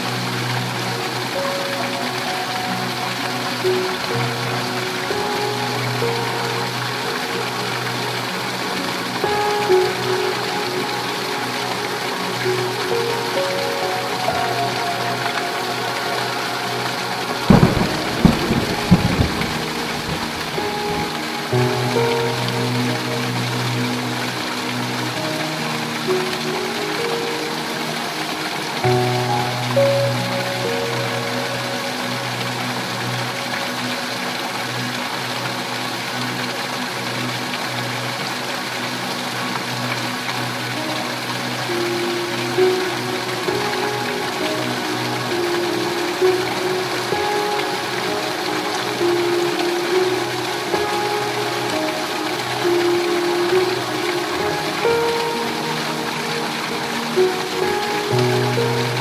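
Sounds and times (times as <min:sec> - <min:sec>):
heavy rain on a tin roof: 0:00.0 - 0:59.0
soft music of held notes: 0:00.0 - 0:59.0
thunderclap: 0:17.5 - 0:21.1.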